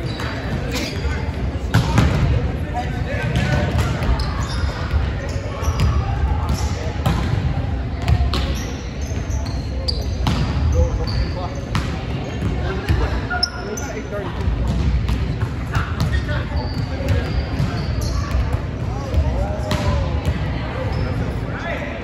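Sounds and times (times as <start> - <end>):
sneakers squeaking on court: 0.0 - 2.3, 3.2 - 7.4, 8.0 - 14.1, 14.7 - 21.4
volleyballs slapping and bouncing: 0.0 - 8.7, 10.2 - 13.2, 14.4 - 20.6.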